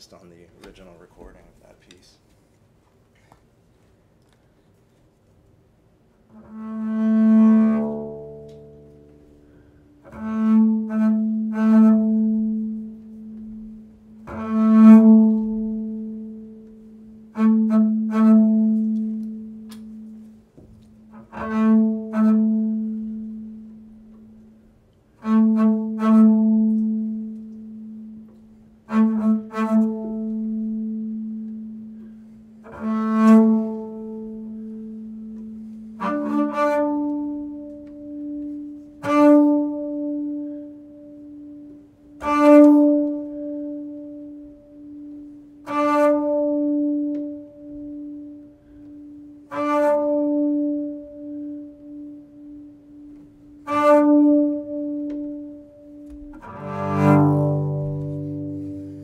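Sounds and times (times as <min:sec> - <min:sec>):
bowed double bass: 0:05.8 - 0:59.0.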